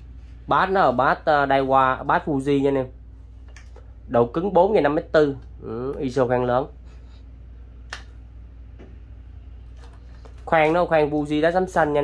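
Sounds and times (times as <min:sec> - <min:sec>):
low hum: 0:00.0 - 0:11.9.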